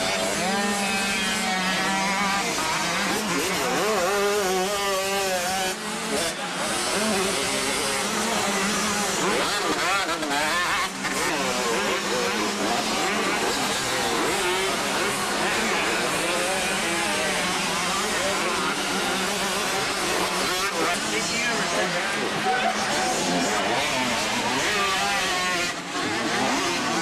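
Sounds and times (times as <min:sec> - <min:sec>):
motocross bike engines revving: 0:00.0 - 0:27.0.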